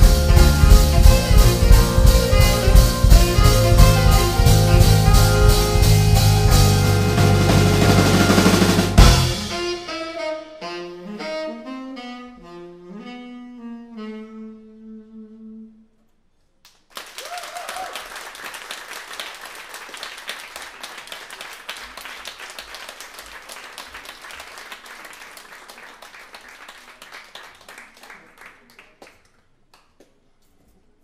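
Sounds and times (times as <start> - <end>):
saxophone playing: 0.0 - 16.0
audience applauding: 16.7 - 30.2.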